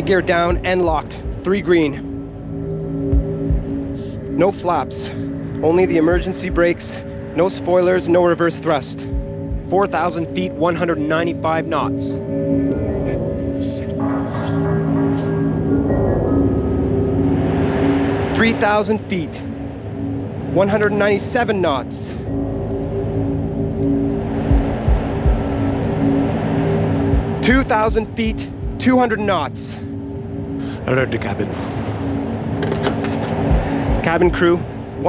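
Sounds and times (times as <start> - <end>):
airliner cockpit noise: 0.0 - 35.0
low music drone: 0.0 - 35.0
deep low thuds: 0.5 - 1.6, 3.1 - 3.8, 6.1 - 6.8, 9.1 - 9.7, 24.4 - 25.7, 27.1 - 28.9, 33.5 - 34.6
rushing airflow noise: 11.9 - 35.0.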